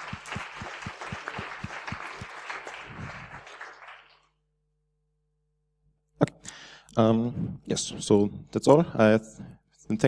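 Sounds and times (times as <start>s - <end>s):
audience applauding: 0.0s - 4.3s
close sharp claps: 0.0s - 4.4s.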